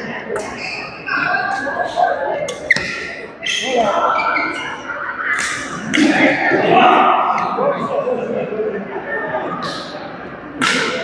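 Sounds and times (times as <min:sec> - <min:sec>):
murmured voices: 0:00.0 - 0:11.0
racket hitting shuttlecock: 0:05.3 - 0:06.2, 0:10.6 - 0:11.0.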